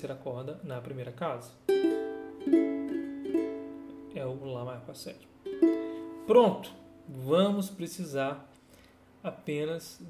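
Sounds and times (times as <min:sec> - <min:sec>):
ukulele chord strummed: 0:01.7 - 0:04.4, 0:05.4 - 0:07.3.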